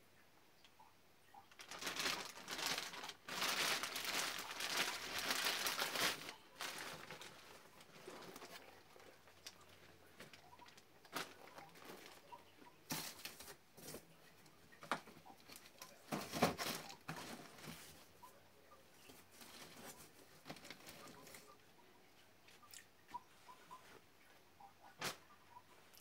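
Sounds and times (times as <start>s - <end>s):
clothes rustling: 1.5s - 14.2s.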